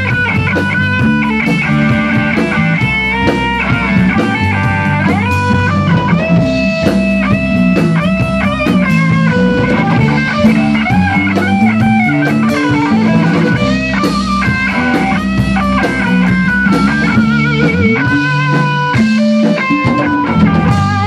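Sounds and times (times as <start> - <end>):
bass guitar: 0.0 - 21.0
drum kit with cymbals: 0.0 - 21.0
electric guitar lead line: 0.0 - 21.0.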